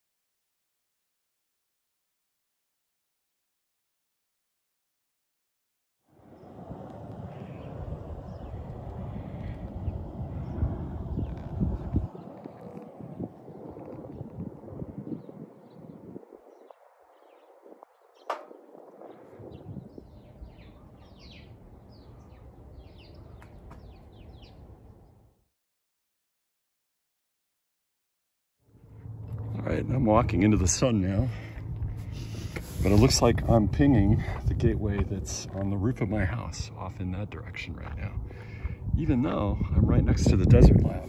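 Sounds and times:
wind noise on microphone: 6.2s - 25.2s, 28.9s - 41.0s
small birds chirping: 7.2s - 14.3s, 15.0s - 25.2s.

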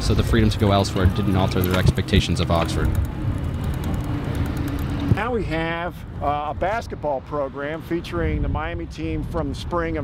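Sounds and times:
road traffic passing: 0.0s - 9.0s.

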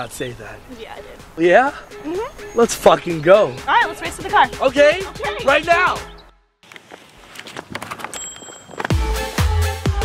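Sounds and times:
running footsteps on pavement: 2.6s - 9.4s
electronic dance music: 3.6s - 6.1s.

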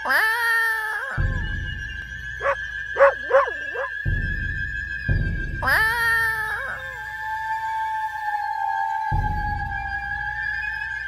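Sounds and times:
puppy yipping: 2.4s - 4.0s.

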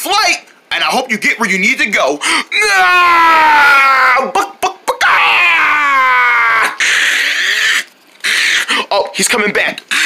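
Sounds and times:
person screaming high: 2.5s - 8.9s.

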